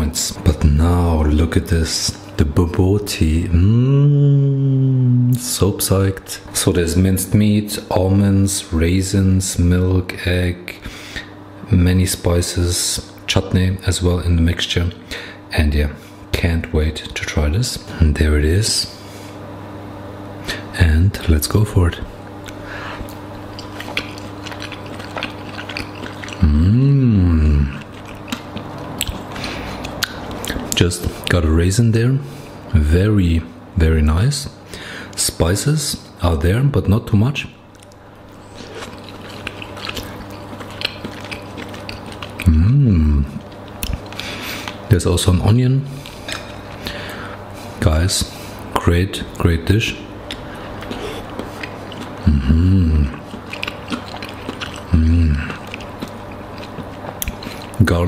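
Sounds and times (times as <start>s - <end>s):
steady low hum: 0.0s - 58.0s
mouth eating sounds: 3.2s - 6.5s, 20.4s - 31.4s, 37.7s - 58.0s
soft chewing: 22.1s - 31.4s, 37.7s - 44.9s, 45.9s - 57.9s.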